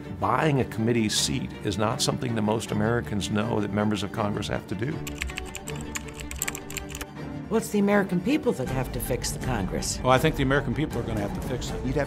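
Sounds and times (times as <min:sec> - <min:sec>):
background music: 0:00.0 - 0:12.0
keyboard key clicks: 0:05.1 - 0:07.1.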